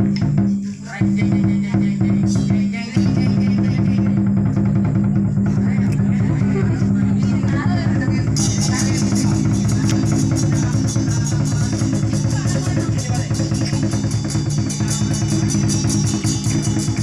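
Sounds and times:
fast drumbeat percussion music: 0.0 - 17.0.

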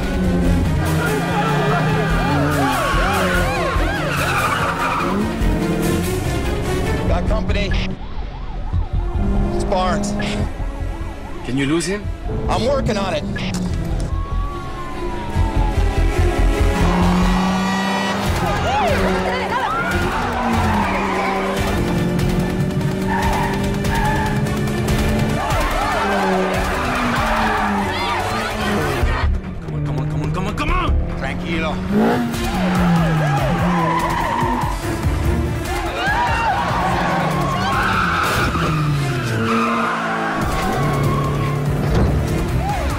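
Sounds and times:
police siren wailing: 0.0 - 7.0, 7.6 - 29.2, 31.9 - 42.9
car engine: 0.0 - 7.1, 7.9 - 42.9
film music: 0.0 - 42.9
tyres skidding: 0.0 - 42.9
emergency siren yelping: 0.9 - 5.4, 14.0 - 21.7.

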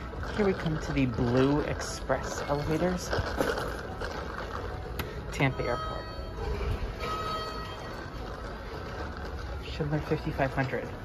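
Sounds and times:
low steady rumble: 0.0 - 11.0
elevator arrival chime: 5.4 - 8.2.

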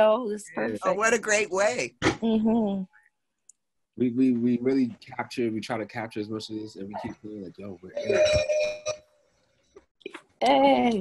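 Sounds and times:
bell-like ringing: 8.0 - 9.0.

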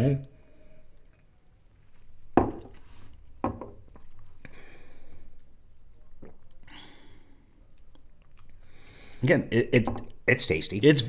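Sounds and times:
glass knocking on tabletop: 2.4 - 2.7, 3.4 - 3.8.

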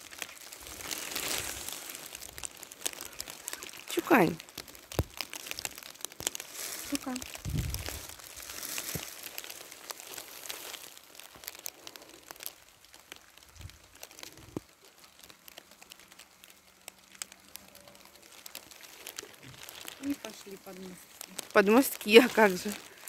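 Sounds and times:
footsteps crunching dry grass: 0.0 - 15.2, 18.0 - 23.0.

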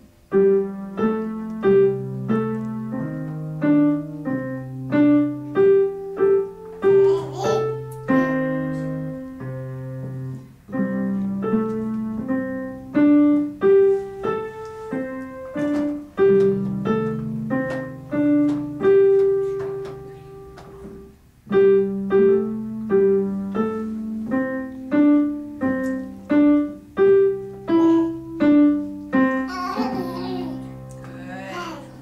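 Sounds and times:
digital piano simple tune: 0.0 - 32.0.

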